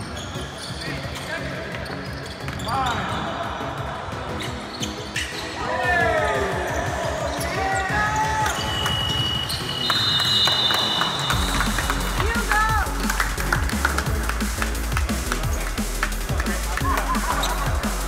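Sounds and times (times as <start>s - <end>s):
shoe squeaks: 0.0s - 3.3s, 4.3s - 5.6s, 7.3s - 11.4s.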